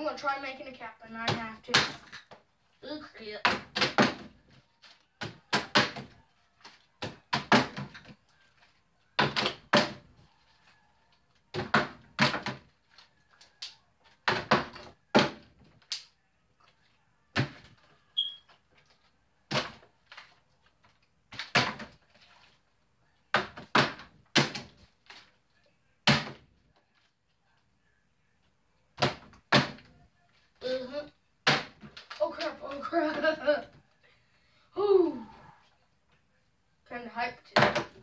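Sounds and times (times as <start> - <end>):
plastic bottle thudding on wooden desk: 37.6 - 38.0.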